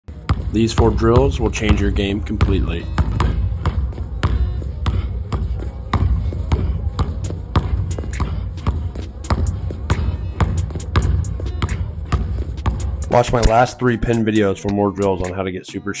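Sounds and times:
basketball dribbled on gym floor: 0.1 - 13.6.

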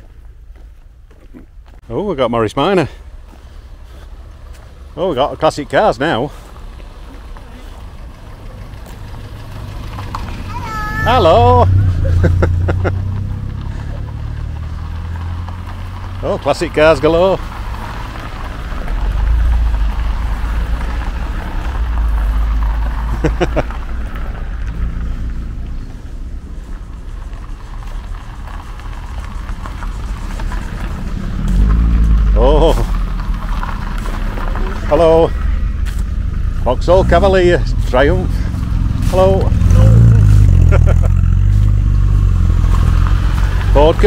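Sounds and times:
car engines rumbling: 0.0 - 44.0.

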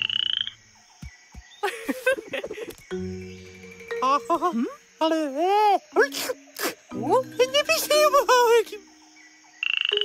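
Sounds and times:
cartoon frog croak: 9.6 - 10.0.

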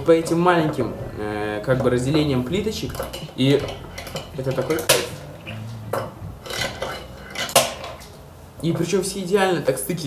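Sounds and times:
fingerboard wheels rolling on tiles: 0.0 - 8.2.

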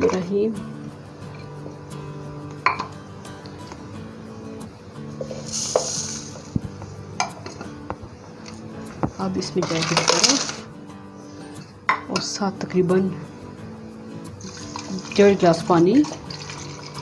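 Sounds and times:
soft background music: 0.0 - 17.0
sugar pouring hiss: 5.0 - 7.2, 14.2 - 17.0
fruit clinking into plastic cup: 9.6 - 10.6.

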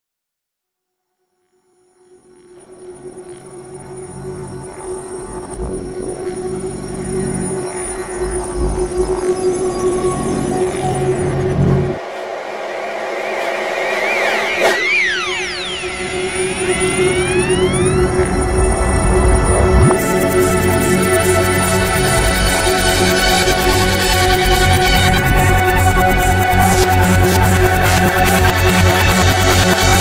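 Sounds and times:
held electronic tone: 2.6 - 21.1
low pulsing bass: 5.4 - 10.4, 13.9 - 30.0
rising and falling pitch sweeps: 5.4 - 25.7.

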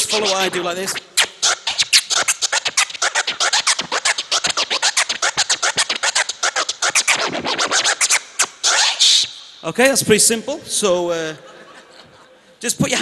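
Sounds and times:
vinyl record scratching: 0.0 - 10.7, 12.6 - 13.0.

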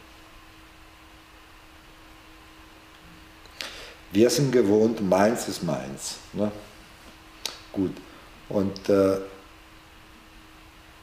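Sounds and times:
faint steady hum: 0.0 - 11.0
steady hiss: 0.0 - 11.0.

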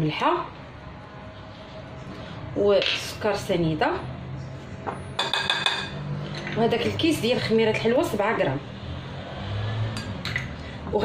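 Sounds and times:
soft background music: 0.0 - 10.0
ceramic bowl clinking against glass bowl: 5.2 - 7.0.

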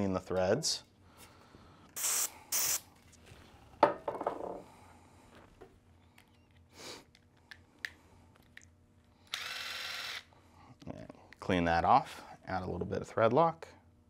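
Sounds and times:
aerosol spray hissing: 2.0 - 2.9
power driver whirring: 9.2 - 10.3.

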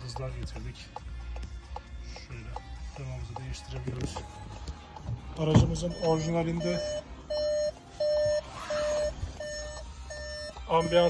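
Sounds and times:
car warning chime beeping: 0.0 - 11.0.

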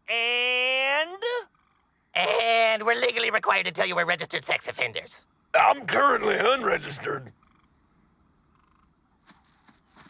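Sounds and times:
frogs and insects chirping: 0.0 - 10.0
soft footsteps: 9.2 - 10.0.

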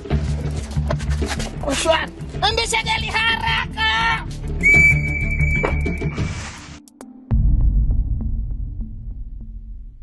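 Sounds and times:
background music: 0.0 - 10.0
whistle long blast: 4.6 - 6.3.

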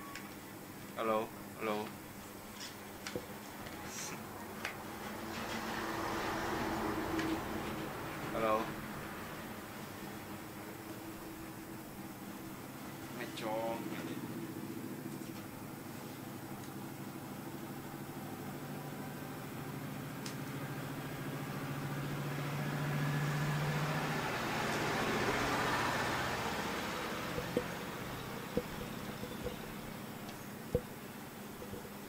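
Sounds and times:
vehicle engine passing: 4.1 - 9.6, 18.2 - 32.0.

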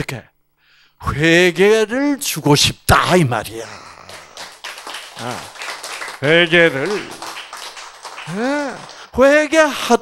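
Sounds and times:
hand clapping: 4.0 - 9.1.

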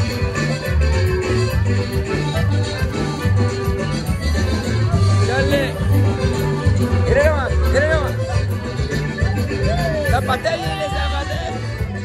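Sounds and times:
accordion dance tune: 0.0 - 12.0
pulsing bass line: 0.0 - 12.0.

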